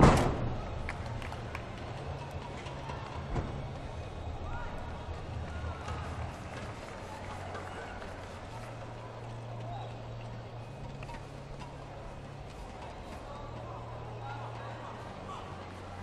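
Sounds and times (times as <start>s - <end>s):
loud landing thud: 0.0s - 0.7s
murmur of hall: 0.0s - 16.0s.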